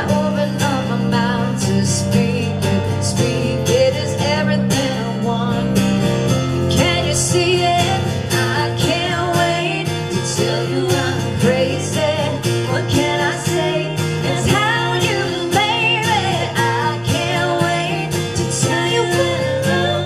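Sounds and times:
strummed acoustic guitar: 0:00.0 - 0:20.0
woman singing: 0:00.0 - 0:20.0.

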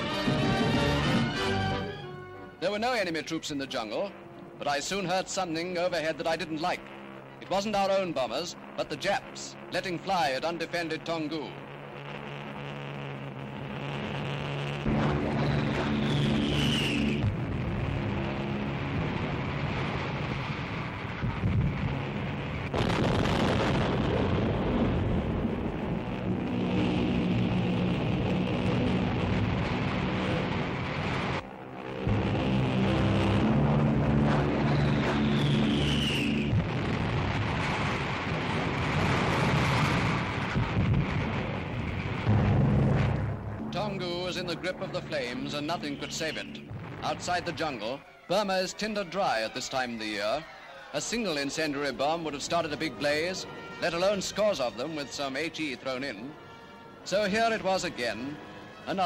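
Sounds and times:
propeller aircraft engines droning: 0:00.0 - 0:37.4, 0:38.0 - 0:50.1
bombs exploding: 0:09.7 - 0:48.0
falling whistle: 0:15.4 - 0:17.3, 0:34.5 - 0:36.6.

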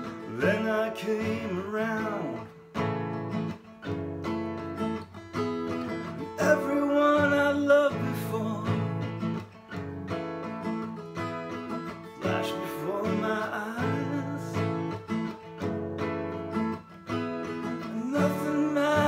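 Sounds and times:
man singing: 0:00.0 - 0:02.6, 0:06.1 - 0:09.2, 0:12.1 - 0:15.0, 0:17.6 - 0:19.0
acoustic guitar strumming: 0:00.0 - 0:19.0.

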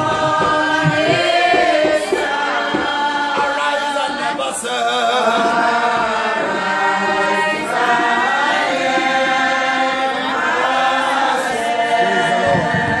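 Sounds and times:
voices chanting a hymn: 0:00.0 - 0:13.0.

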